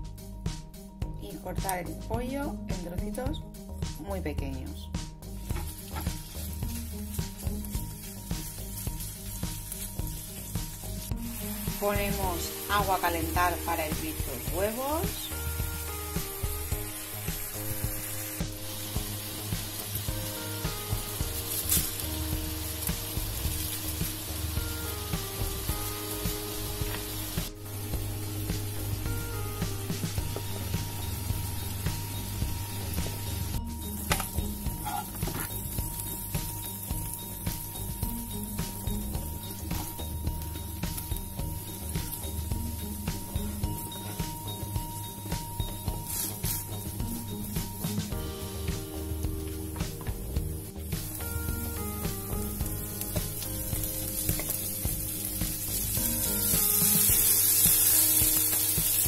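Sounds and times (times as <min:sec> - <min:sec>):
background music: 0:00.0 - 0:59.0
chicken sizzling in a frying pan: 0:05.3 - 0:59.0.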